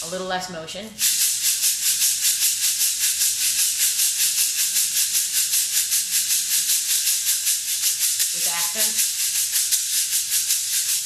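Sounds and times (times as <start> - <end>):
shaker played in steady rhythm: 0.0 - 11.0.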